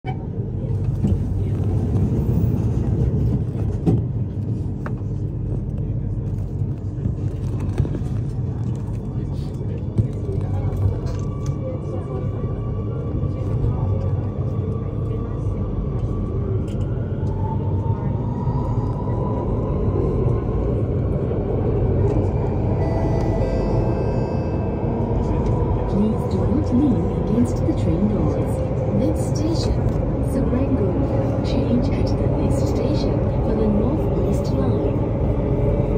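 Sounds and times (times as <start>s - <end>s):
train wheels rumbling on rail: 0.1s - 35.9s.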